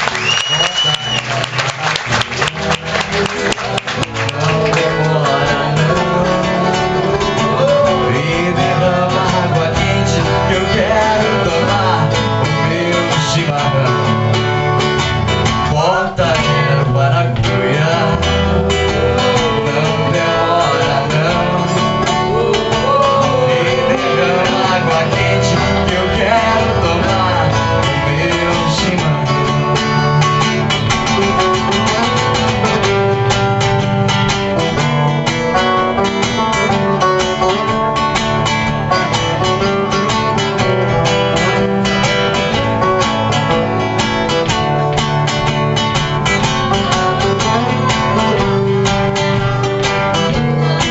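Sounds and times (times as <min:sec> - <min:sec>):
two acoustic guitars playing folk song: 0:00.0 - 0:50.9.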